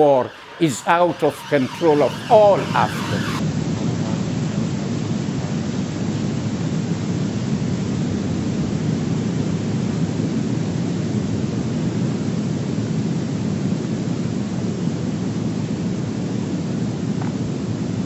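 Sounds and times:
loud low rumble: 0.0s - 10.3s.

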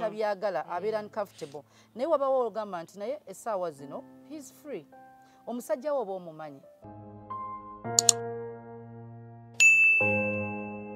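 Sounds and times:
button clicks: 7.9s - 8.2s
bright bell ding: 9.6s - 10.5s.

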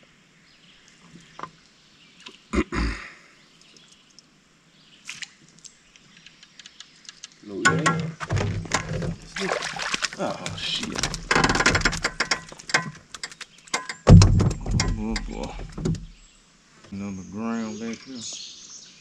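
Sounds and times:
sharp knocks and clatter: 6.2s - 9.4s, 10.0s - 16.2s
loud low thump: 14.1s - 16.2s.

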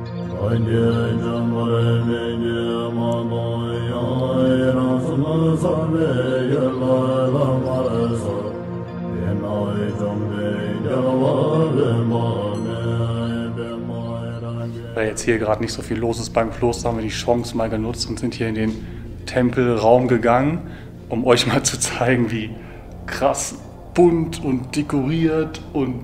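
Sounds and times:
steady drone: 0.0s - 26.0s
voice chanting a melody: 0.1s - 26.0s.

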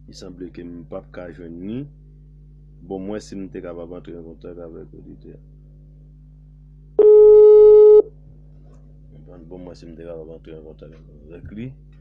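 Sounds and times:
phone call beep: 7.0s - 8.1s.

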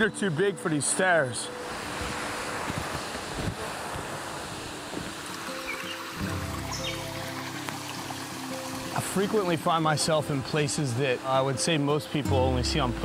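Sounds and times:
stream water rushing: 0.0s - 13.0s
music of low held notes: 5.5s - 13.0s.

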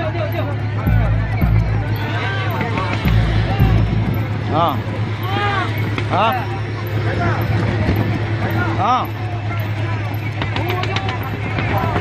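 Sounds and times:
boat engine humming: 0.0s - 12.0s
people calling out: 0.9s - 7.5s.

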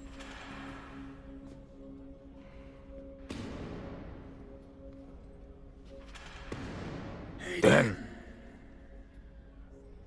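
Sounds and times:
soft sustained music: 0.0s - 10.0s.

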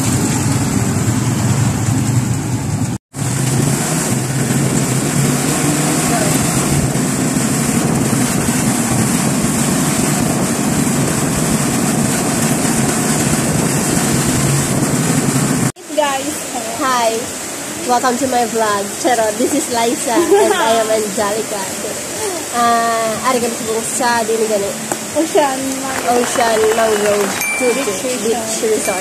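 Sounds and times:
road and wind noise: 0.0s - 29.0s.

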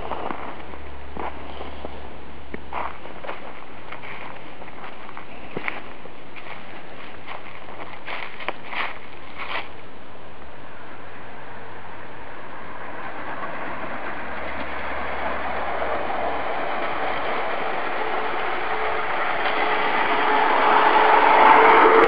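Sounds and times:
steel wheels rolling on track: 0.0s - 9.8s, 10.7s - 22.0s.

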